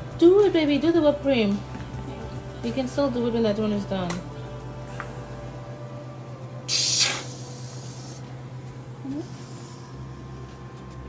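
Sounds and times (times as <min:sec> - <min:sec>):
aerosol can hissing burst: 0:06.7 - 0:08.2.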